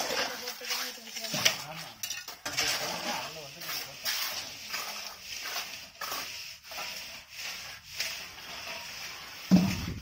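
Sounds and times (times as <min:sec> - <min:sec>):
metal edge scraping wet cement: 0:00.0 - 0:10.0.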